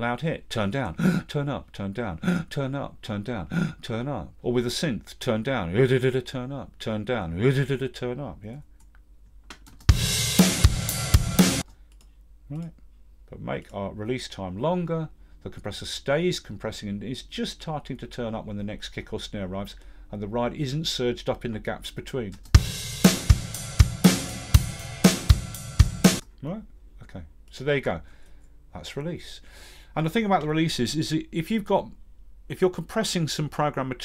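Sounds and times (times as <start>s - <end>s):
drum kit playing: 9.8s - 11.7s, 22.5s - 26.2s.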